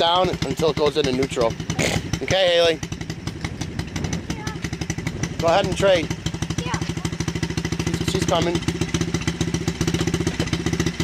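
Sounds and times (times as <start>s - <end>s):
dirt bike engine idling: 0.0s - 11.0s.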